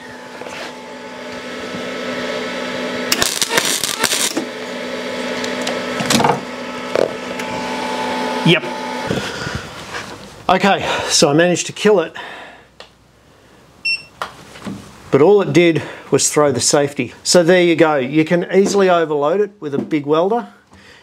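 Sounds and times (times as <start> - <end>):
welder electrical hum: 0.0 - 19.2
welding arc crackle: 3.0 - 4.6.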